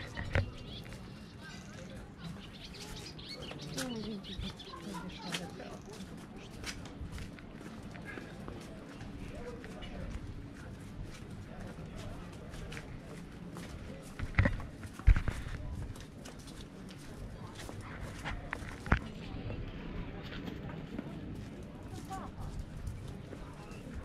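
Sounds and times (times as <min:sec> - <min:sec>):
footsteps on stone paving: 0:00.0 - 0:24.0.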